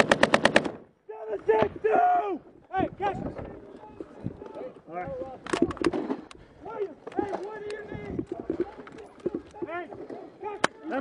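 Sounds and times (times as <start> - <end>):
gunshots: 0.0 - 0.8.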